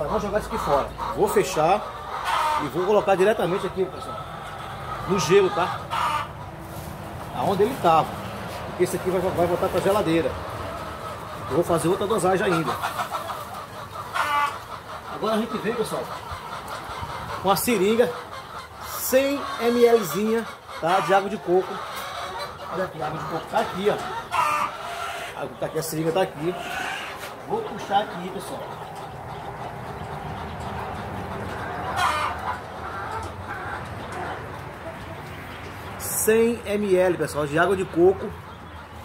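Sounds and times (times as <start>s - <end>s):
chicken calling loudly: 0.0s - 39.0s
chicken call: 10.8s - 25.4s, 30.8s - 34.4s.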